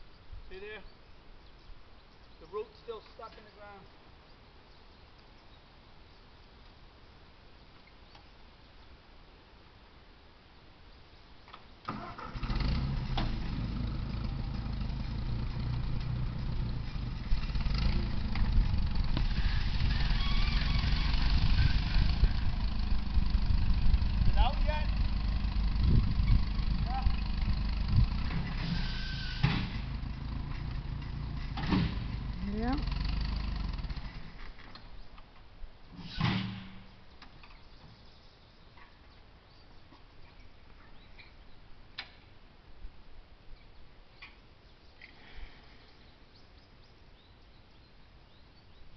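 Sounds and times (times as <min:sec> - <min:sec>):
tractor engine straining under load: 0:11.8 - 0:34.9.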